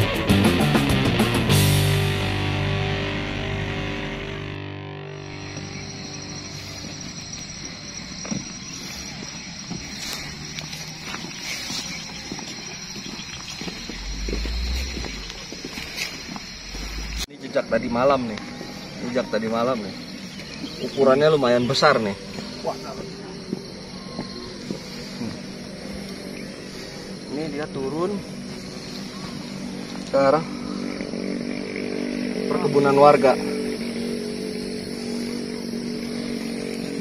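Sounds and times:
steady engine hum: 0.0s - 37.0s
footsteps on dirt path: 5.2s - 17.3s, 18.2s - 27.4s, 33.8s - 37.0s
low rumble: 13.4s - 17.3s.

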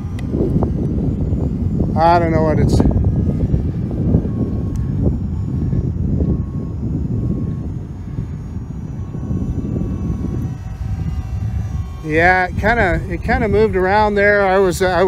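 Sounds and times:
continuous low rumble: 0.0s - 15.0s
drone propellers buzzing: 0.0s - 15.0s.

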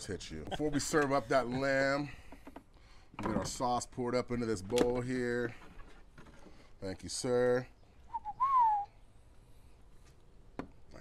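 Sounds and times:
rising and falling whistle note: 8.1s - 8.9s
whistle chirps: 8.1s - 9.0s.

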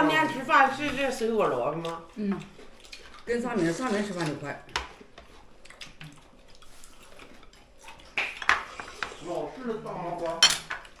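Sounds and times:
utensils clinking on ceramic bowls: 10.1s - 11.0s.

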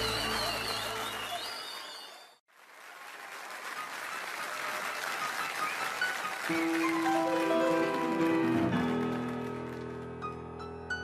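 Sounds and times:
audience applauding: 0.0s - 10.4s.

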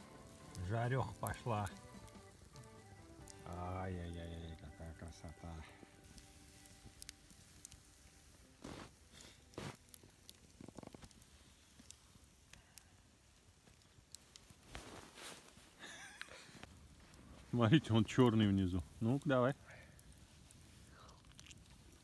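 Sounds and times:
campfire crackling: 0.0s - 22.0s
soft rustling: 6.2s - 12.6s, 13.4s - 19.2s.

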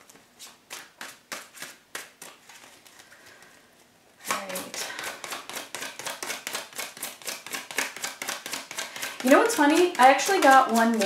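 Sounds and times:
cards being shuffled: 0.0s - 3.6s, 4.2s - 11.0s.

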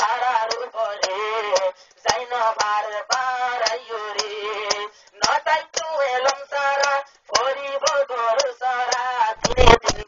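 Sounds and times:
man singing: 0.0s - 10.0s
percussion beat: 0.0s - 10.0s.

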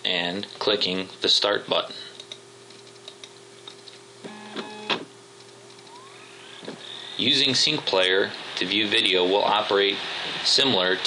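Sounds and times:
disc drive whine: 0.4s - 11.0s
computer mechanical whir: 2.7s - 11.0s.

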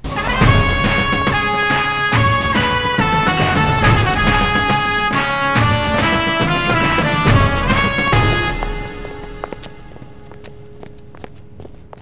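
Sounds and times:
faint background music: 0.0s - 12.0s
footsteps on hard floor: 2.2s - 12.0s.

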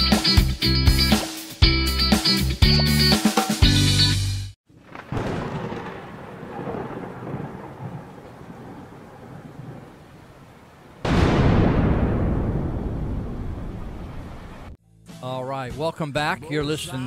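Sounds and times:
loud thunderclap: 4.7s - 10.2s, 11.0s - 14.8s
rain: 4.7s - 14.8s
thunder rumbling: 4.7s - 14.8s.

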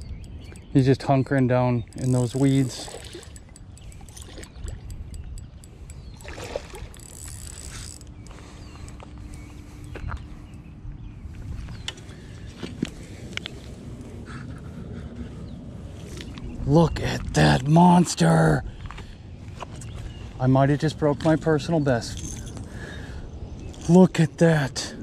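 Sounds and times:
fish splashing in water: 6.2s - 7.0s.

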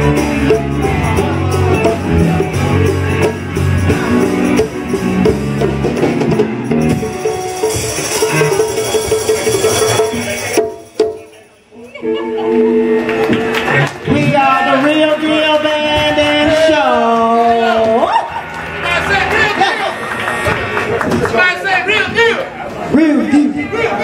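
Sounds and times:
live band playing funk: 0.0s - 14.3s, 18.1s - 21.5s.

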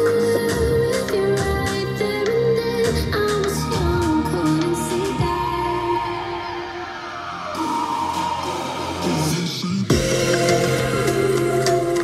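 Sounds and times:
song through studio monitors: 0.0s - 12.0s.

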